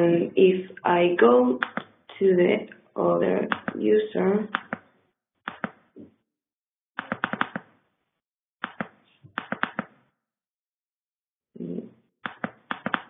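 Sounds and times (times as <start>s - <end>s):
computer keyboard typing: 1.6s - 1.9s, 3.5s - 3.8s, 4.5s - 4.9s, 5.5s - 5.8s, 7.0s - 7.7s, 8.6s - 9.9s, 12.3s - 13.0s.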